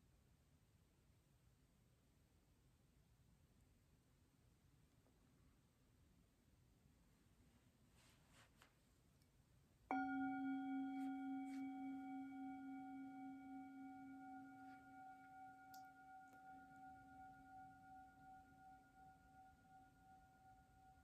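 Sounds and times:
metal singing bowl ringing: 9.9 - 21.0.

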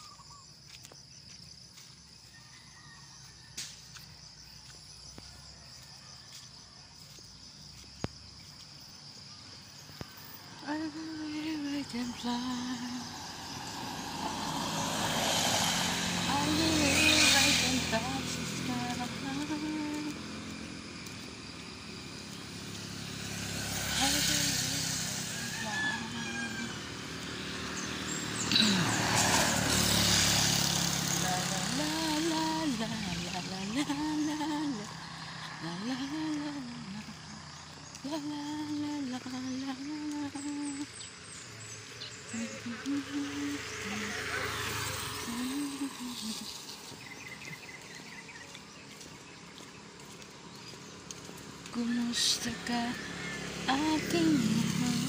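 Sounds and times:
vehicle passing on wet road: 12.0 - 39.8, 40.6 - 55.0.

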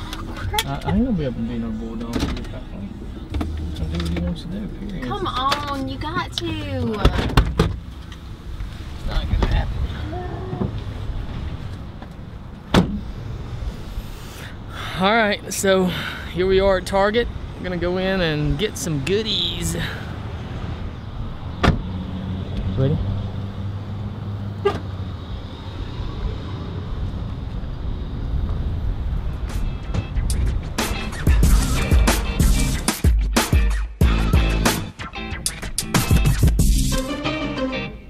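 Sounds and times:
traffic: 0.0 - 38.0
vehicle door slamming: 7.0 - 7.9, 12.6 - 13.1, 21.6 - 21.9
wind rumble on microphone: 25.8 - 30.8.

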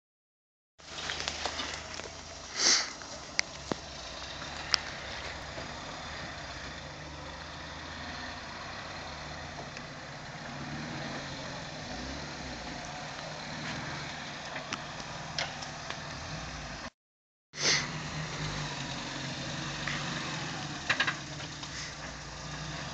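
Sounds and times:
off-road vehicle engine running: 0.8 - 16.9, 17.8 - 22.9.

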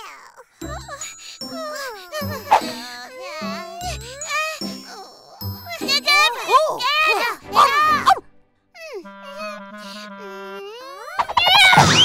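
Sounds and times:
jingly cartoon music: 0.5 - 12.0
cartoon character vocalizations: 6.1 - 8.2, 8.8 - 12.0.

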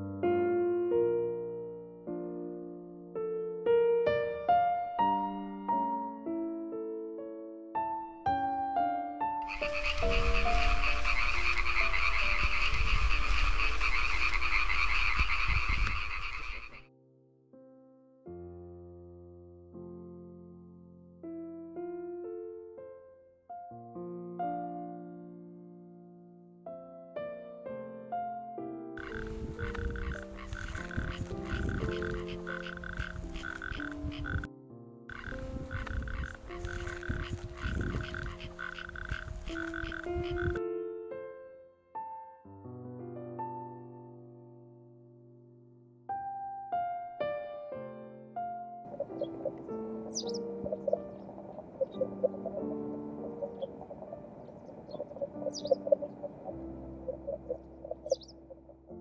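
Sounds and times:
soft piano music: 0.0 - 59.0
chorus of frogs trilling: 9.4 - 16.8, 29.0 - 34.5, 35.1 - 40.6, 48.9 - 58.8.

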